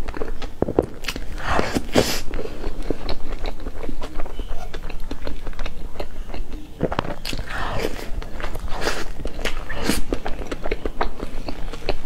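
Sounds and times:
chewing and mouth sounds: 0.0s - 12.0s.

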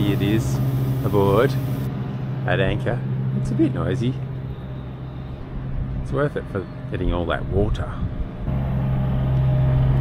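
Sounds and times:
electric pump motor humming: 0.0s - 1.9s.

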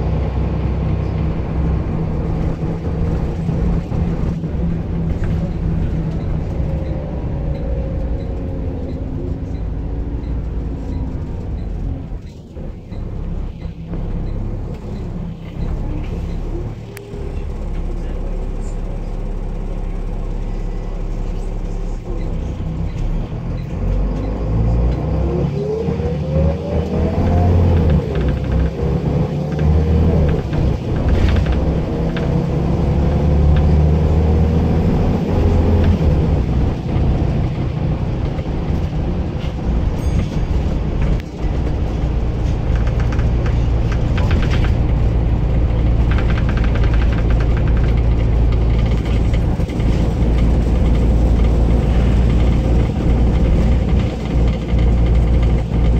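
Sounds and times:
bus engine rumble and whine: 0.0s - 55.9s.

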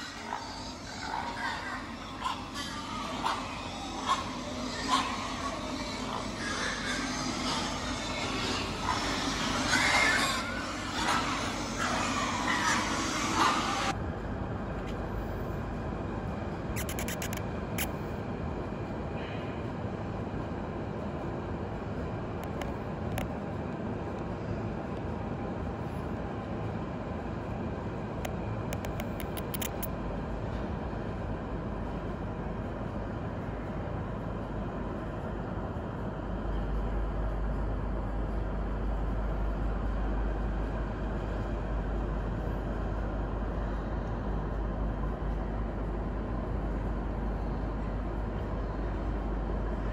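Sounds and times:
pigs grunting and squealing: 0.0s - 13.9s
steady low rumble: 13.8s - 49.9s
sharp clicks: 16.8s - 17.9s, 28.8s - 29.9s.

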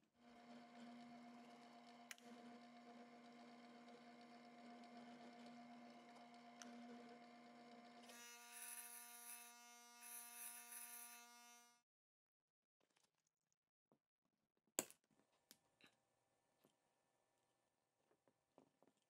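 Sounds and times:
drill press motor humming: 0.2s - 11.8s
drill bit cutting steel: 4.8s - 11.8s.

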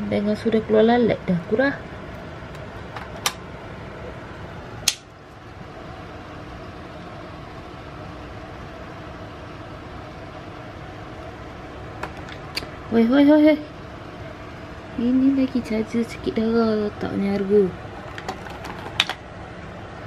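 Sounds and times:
background hum: 0.0s - 20.0s.

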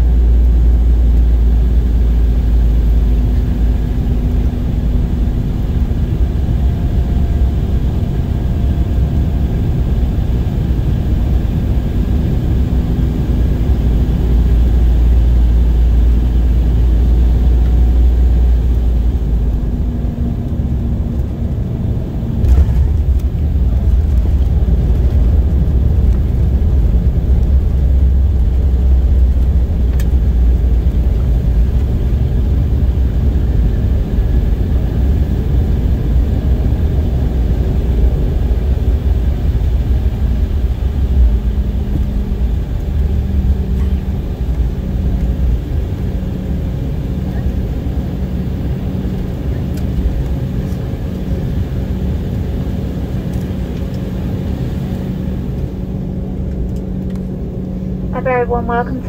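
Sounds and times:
aircraft engine noise: 0.0s - 59.0s
wheels rumbling on ground: 0.0s - 59.0s
steady hum: 17.9s - 59.0s.

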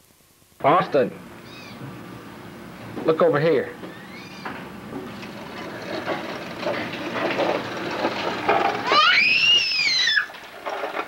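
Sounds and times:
toddler squealing: 3.9s - 4.4s, 8.8s - 10.4s
toy vacuum rattling on concrete: 5.2s - 11.0s.

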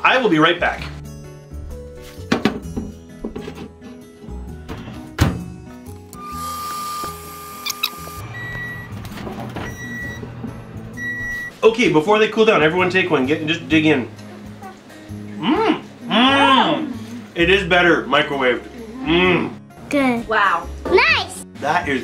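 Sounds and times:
light background music: 0.0s - 22.0s
microwave humming: 6.0s - 11.6s
short high beeps: 7.6s - 8.9s, 9.7s - 10.2s, 11.0s - 11.5s.

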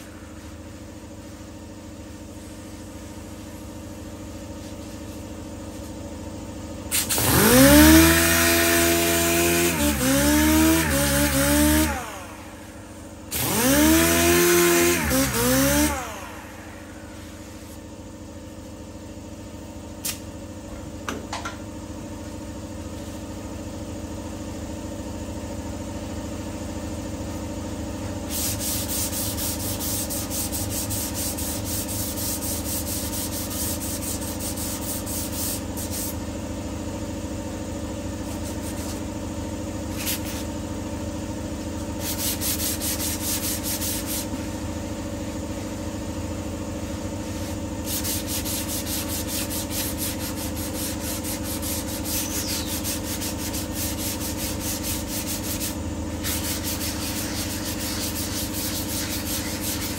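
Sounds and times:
steady low hum: 0.0s - 7.4s, 8.6s - 24.8s, 25.4s - 59.9s
sandpaper rubbing back and forth: 13.4s - 17.9s, 28.3s - 36.2s, 38.2s - 39.1s, 39.9s - 40.6s, 41.9s - 44.6s, 47.2s - 59.9s.

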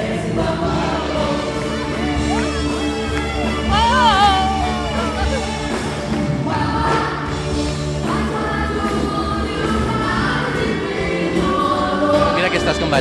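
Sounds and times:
live pop band playing: 0.0s - 13.0s
voices singing held notes: 0.0s - 13.0s.

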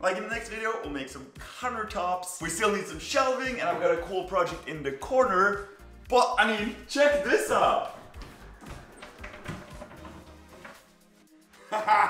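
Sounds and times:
background music: 0.0s - 12.0s
cabinet doors tapping open: 8.0s - 11.0s.

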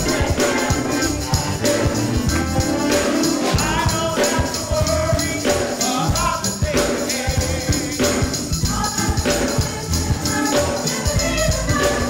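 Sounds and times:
choir singing gospel with band: 0.0s - 12.0s.

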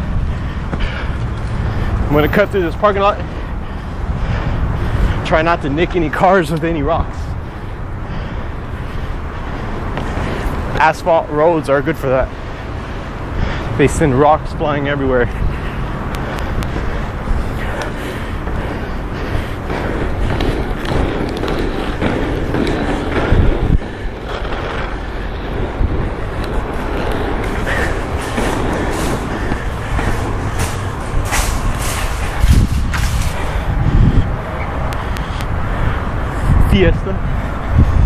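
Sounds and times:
skate wheels rolling on asphalt: 0.0s - 38.0s.

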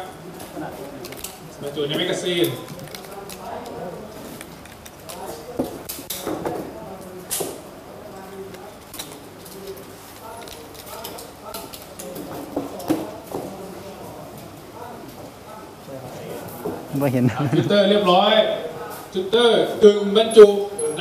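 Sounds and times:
background chatter of people: 0.0s - 21.0s.

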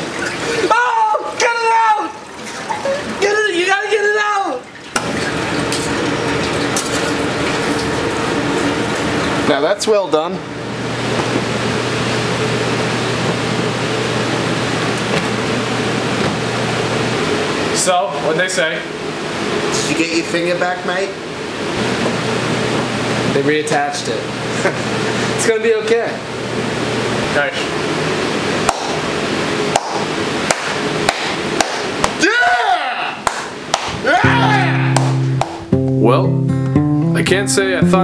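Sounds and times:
kitchen ventilation rushing: 0.0s - 34.7s
deep fryer hiss and hum: 0.0s - 36.2s.

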